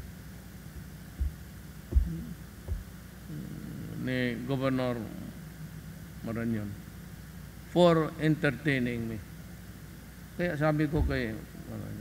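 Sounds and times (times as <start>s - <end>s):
steady low hum: 0.0s - 12.0s
low dull thumps on microphone: 1.1s - 3.0s, 10.9s - 11.4s.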